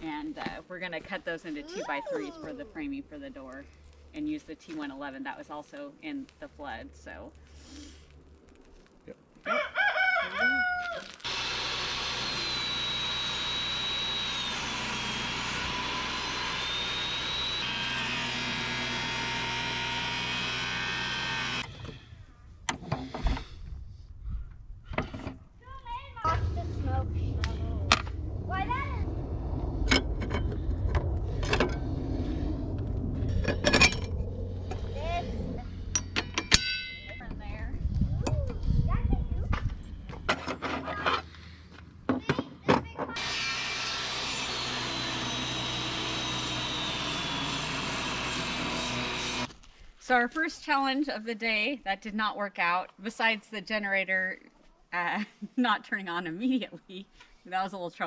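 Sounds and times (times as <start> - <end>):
table saw whining: 11.2 - 22.1, 43.2 - 49.5
steady low hum: 21.4 - 40.3.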